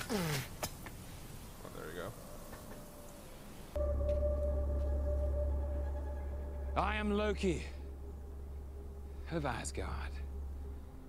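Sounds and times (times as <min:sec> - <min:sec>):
faint hiss: 0:00.0 - 0:03.8
low drone with held tone: 0:03.8 - 0:11.0.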